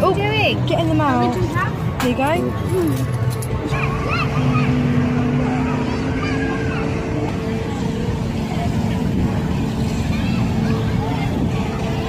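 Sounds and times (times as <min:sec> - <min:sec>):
distant chatter of people: 0:00.0 - 0:12.0
steady low rumble: 0:00.0 - 0:12.0.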